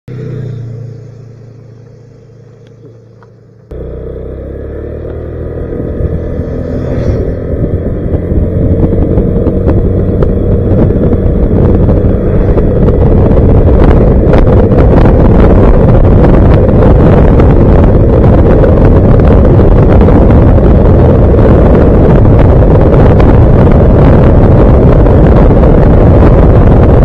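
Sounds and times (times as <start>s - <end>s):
scooter engine: 0.1s - 27.0s
wind noise on microphone: 4.8s - 27.0s.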